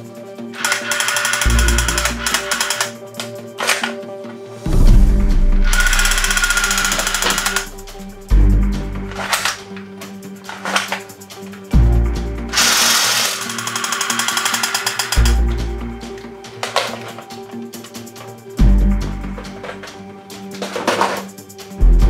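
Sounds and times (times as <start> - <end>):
background music with deep bass: 0.0 - 22.0
plastic clicks: 0.6 - 4.0, 5.7 - 7.7, 9.1 - 9.8, 10.4 - 11.1, 12.6 - 15.6, 16.6 - 18.3, 19.5 - 21.3
toy machine-gun rattling: 0.6 - 4.0, 5.7 - 7.8, 9.1 - 9.7, 10.5 - 11.1, 12.5 - 15.4, 16.6 - 17.3, 20.6 - 21.3.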